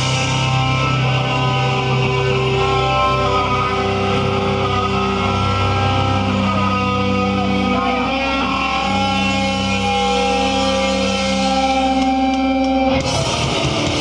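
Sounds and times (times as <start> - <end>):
distorted electric guitar chords: 0.0 - 14.0
drumming: 11.8 - 14.0.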